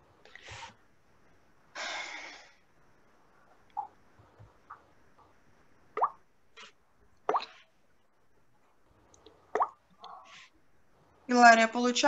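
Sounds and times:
watery plops rising in pitch: 0:06.0 - 0:06.2, 0:07.2 - 0:07.6, 0:09.5 - 0:09.8.

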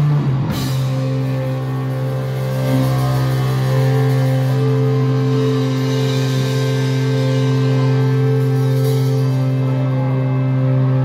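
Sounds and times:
distorted guitar and bass drone: 0:00.0 - 0:11.0.

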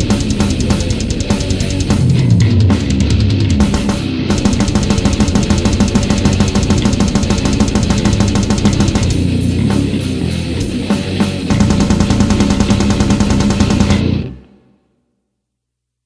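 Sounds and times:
fast drumming: 0:00.0 - 0:14.3
bass guitar: 0:00.0 - 0:14.5
distorted electric guitars: 0:00.0 - 0:14.6.

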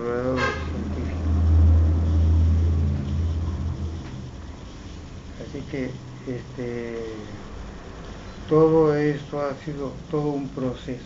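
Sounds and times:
loud low rumble: 0:00.7 - 0:05.8.

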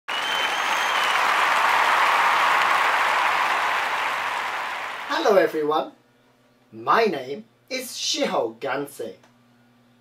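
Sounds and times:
high whistle: 0:00.1 - 0:03.6
crowd applause: 0:00.1 - 0:05.1.

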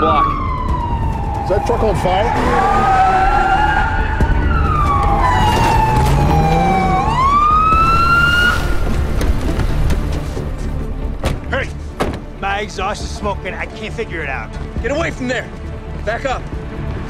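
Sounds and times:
emergency vehicle siren wailing: 0:00.0 - 0:08.9.

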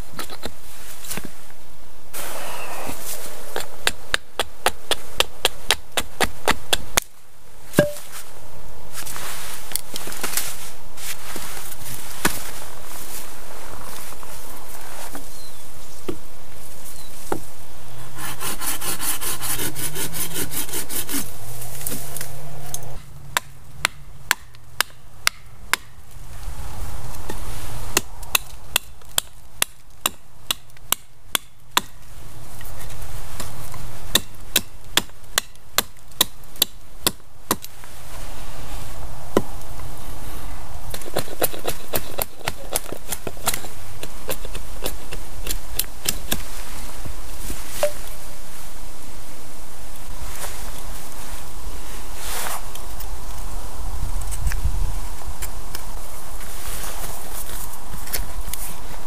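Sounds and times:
hatchet chopping wood: 0:03.5 - 0:07.1, 0:07.7 - 0:08.1, 0:23.3 - 0:26.0, 0:27.9 - 0:32.0, 0:34.1 - 0:37.7, 0:40.9 - 0:46.4.

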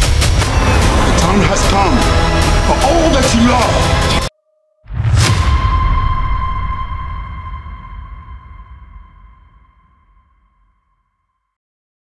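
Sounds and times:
low rumble: 0:00.0 - 0:04.3.

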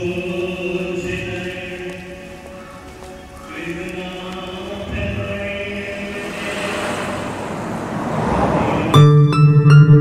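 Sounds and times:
choir holding chords: 0:03.3 - 0:10.0
rising whoosh: 0:05.7 - 0:09.3.

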